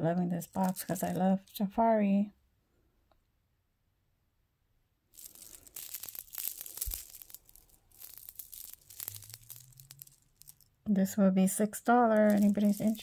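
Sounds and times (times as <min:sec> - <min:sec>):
scratchy rustling: 0:00.4 - 0:01.2, 0:05.2 - 0:10.7, 0:12.0 - 0:13.0
chain bracelet rattling and clicking: 0:05.2 - 0:10.7, 0:12.1 - 0:13.0.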